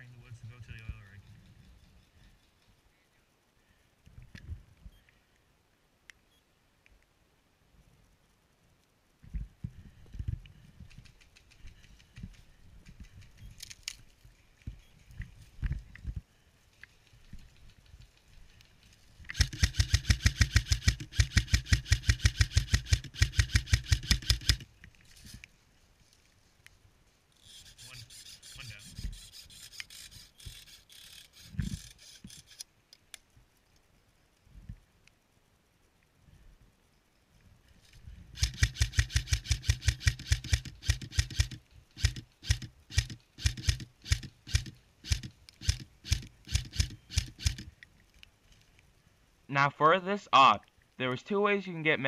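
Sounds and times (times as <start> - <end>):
high rapid clicking: 10.8 - 13.6, 17.0 - 24.6, 38.4 - 47.7
airsoft rifle rapid shots: 19.3 - 24.6, 38.4 - 47.6.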